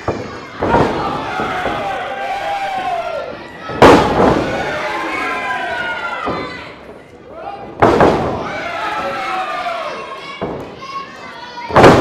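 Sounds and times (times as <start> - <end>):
voices shouting: 0.0 - 12.0.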